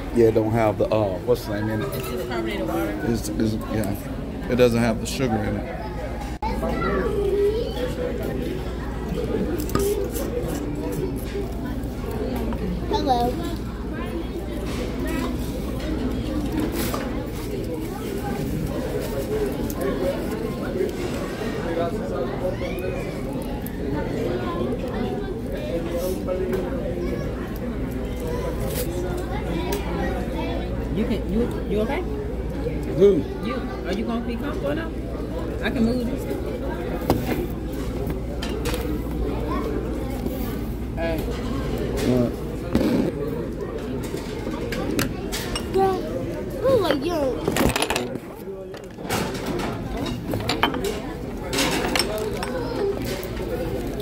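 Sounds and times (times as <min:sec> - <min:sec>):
murmur of voices: 0:00.0 - 0:54.0.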